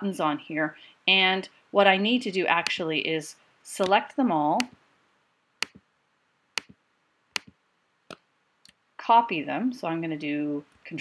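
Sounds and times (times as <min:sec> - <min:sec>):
computer mouse clicks: 0:05.6 - 0:05.8.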